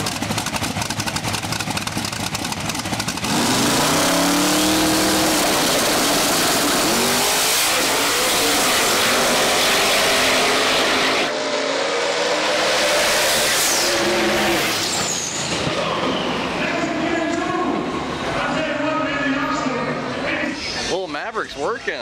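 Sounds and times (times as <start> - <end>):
race cars accelerating at full throttle: 2.9 - 20.9
engines crackling on launch limiter: 3.2 - 16.8.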